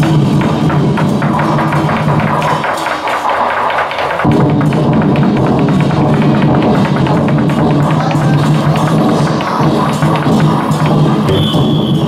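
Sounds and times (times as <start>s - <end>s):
deep drum beats: 0.0s - 12.0s
drum and cymbal ensemble: 0.0s - 12.0s.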